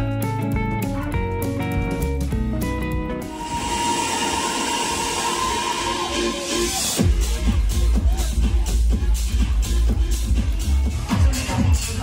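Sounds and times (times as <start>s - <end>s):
held note: 3.2s - 7.1s
nightclub music with heavy bass: 3.2s - 12.0s
hissy club din: 3.3s - 9.8s.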